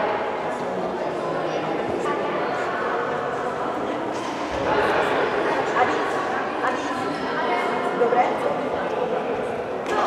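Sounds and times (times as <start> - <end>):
overlapping voices chattering: 0.0 - 10.0.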